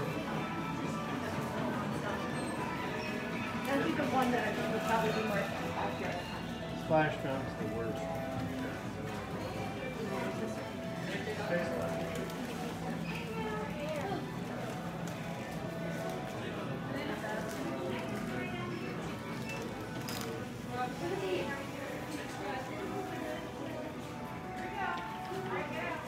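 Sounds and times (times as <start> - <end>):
background music: 0.0 - 26.0
indistinct chatter of shoppers: 0.0 - 26.0.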